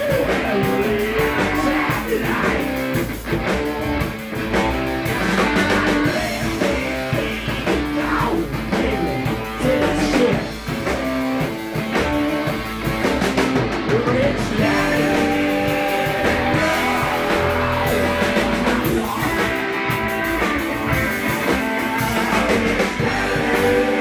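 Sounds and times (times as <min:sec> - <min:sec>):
person singing into microphone: 0:00.0 - 0:02.8, 0:05.0 - 0:10.6, 0:13.9 - 0:19.9, 0:21.4 - 0:24.0
drum kit: 0:00.0 - 0:24.0
electric guitar: 0:00.0 - 0:24.0.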